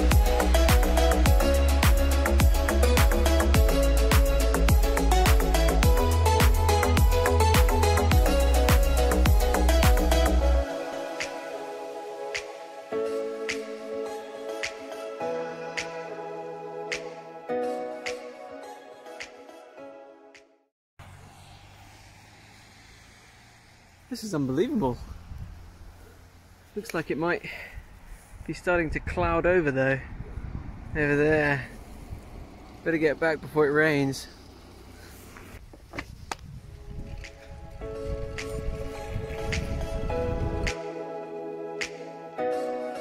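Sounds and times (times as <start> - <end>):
music with steady beat: 0.0 - 16.1, 16.9 - 17.2, 37.2 - 41.2, 41.8 - 43.0
even hiss: 21.3 - 27.5
wind rumble on microphone: 24.6 - 26.0, 27.8 - 33.5, 35.6 - 40.8.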